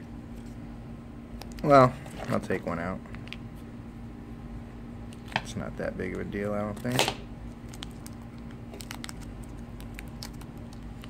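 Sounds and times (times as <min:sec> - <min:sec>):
steady low hum: 0:00.0 - 0:11.0
plastic bag crinkling: 0:07.6 - 0:11.0.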